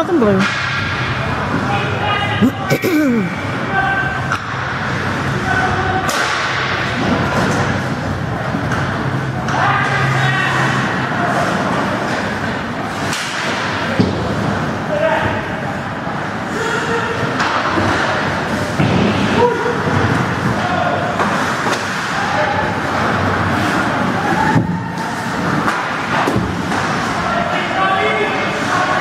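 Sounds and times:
hockey sticks and puck clacking: 0:00.4 - 0:01.8, 0:04.2 - 0:15.4, 0:16.2 - 0:29.0.

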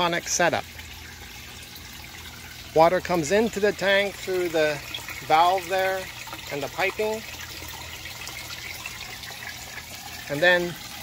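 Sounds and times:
water pouring into a tank: 0:00.0 - 0:11.0.

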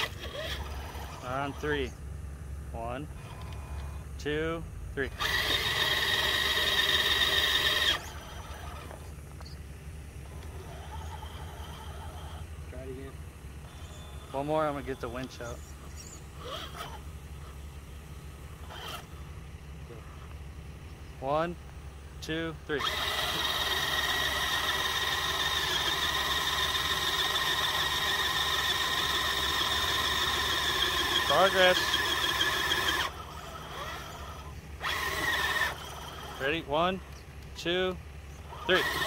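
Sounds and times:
electric motor whir: 0:00.0 - 0:01.9, 0:05.0 - 0:09.6, 0:10.2 - 0:20.4, 0:22.7 - 0:37.2, 0:38.3 - 0:39.0.

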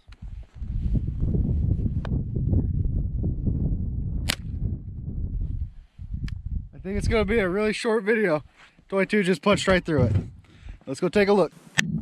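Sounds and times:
steady low rumble: 0:11.8 - 0:12.0.

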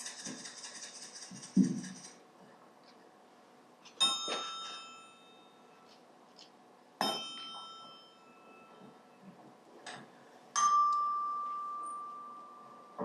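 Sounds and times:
metal percussion ringing: 0:04.0 - 0:05.8, 0:07.0 - 0:09.2, 0:10.5 - 0:13.0.

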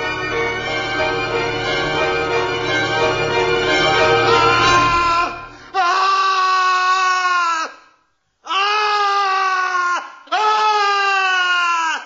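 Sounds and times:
man screaming: 0:04.6 - 0:07.8, 0:08.5 - 0:12.0
man breathing: 0:05.4 - 0:05.8.

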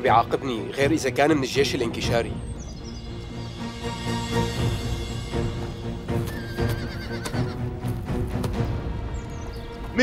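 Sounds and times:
background music with held notes: 0:00.0 - 0:10.0
horse whinnying: 0:06.2 - 0:07.6.

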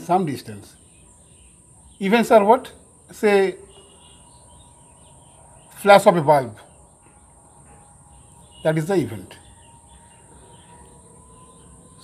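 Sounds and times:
low steady hiss: 0:00.0 - 0:06.9.

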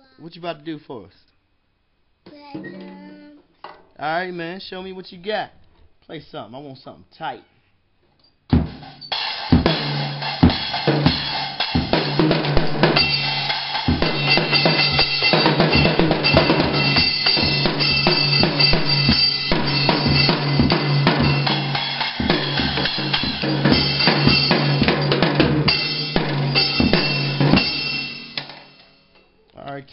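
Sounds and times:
child playing drum kit: 0:02.3 - 0:03.9, 0:08.5 - 0:29.1
cymbals ringing: 0:08.8 - 0:29.2.

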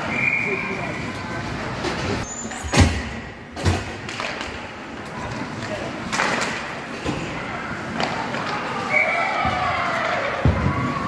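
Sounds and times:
ice hockey game background noise: 0:00.0 - 0:11.0.

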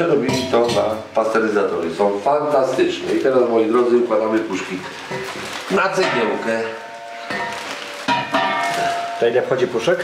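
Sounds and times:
metallic clank with ringing: 0:06.0 - 0:09.6.

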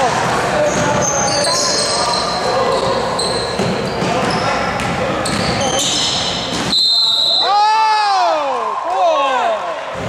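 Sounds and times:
shoes squeaking: 0:00.6 - 0:07.4.

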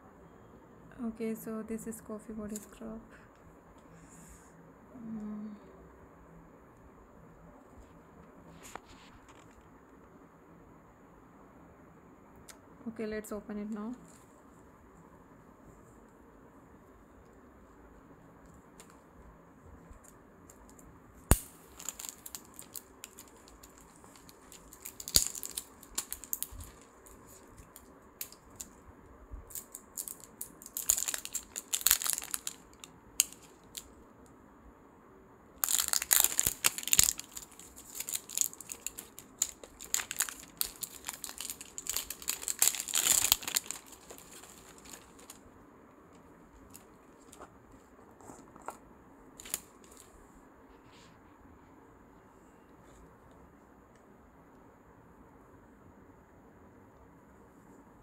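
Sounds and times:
plastic wrapping crinkling and tearing: 0:21.3 - 0:28.8, 0:29.5 - 0:33.9, 0:35.6 - 0:45.4, 0:49.4 - 0:50.1.

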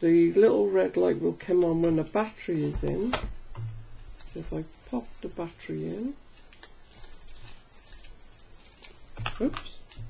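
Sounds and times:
plastic wrapper rustling: 0:02.5 - 0:10.0.

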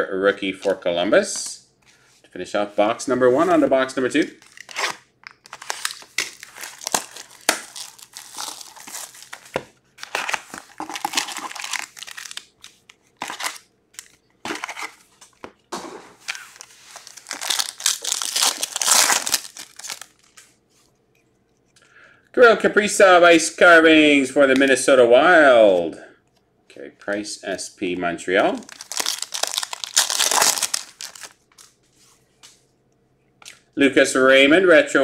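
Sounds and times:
foil pack tearing open: 0:04.4 - 0:12.5, 0:13.2 - 0:15.0, 0:16.2 - 0:20.3, 0:28.7 - 0:31.4
plastic shrink-wrap crinkling and tearing: 0:04.4 - 0:15.0, 0:16.2 - 0:20.6, 0:28.6 - 0:31.8.

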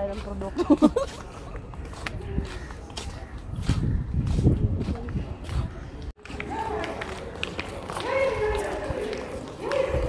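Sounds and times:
light footsteps: 0:00.0 - 0:10.0
outdoor background noise: 0:00.0 - 0:10.0.

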